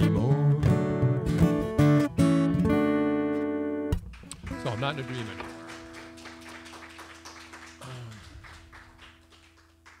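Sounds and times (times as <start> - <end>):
audience clapping: 4.0 - 10.0.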